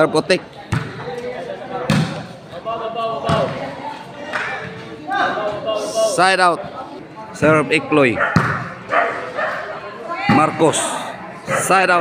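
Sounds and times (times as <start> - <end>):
spectators' voices: 0.0 - 12.0
ball being struck thuds: 0.7 - 1.0, 1.8 - 2.3, 8.3 - 8.8.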